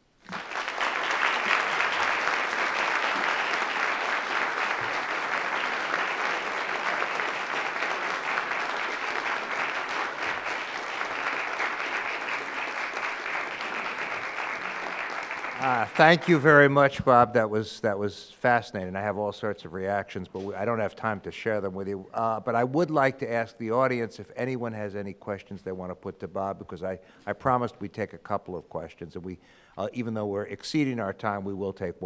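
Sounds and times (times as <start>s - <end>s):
audience applause: 0.2s - 16.8s.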